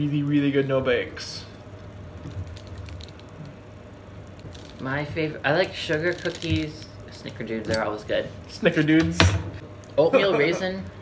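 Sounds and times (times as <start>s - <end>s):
low steady hum: 0.0s - 11.0s
cookie crackling under cutter: 1.8s - 3.6s, 4.2s - 8.1s.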